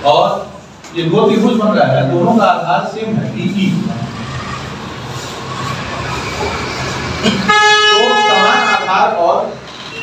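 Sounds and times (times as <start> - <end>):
vehicle horn honk: 7.3 - 9.2.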